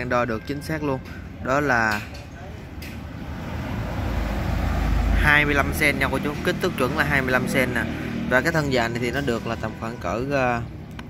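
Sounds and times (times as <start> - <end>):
vehicle passing by: 3.0 - 9.2.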